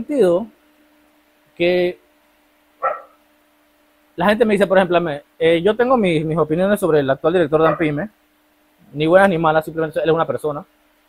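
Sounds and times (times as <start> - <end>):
faint steady hum: 0.0 - 11.0
sharp bark-like call: 2.8 - 3.2, 7.6 - 7.9.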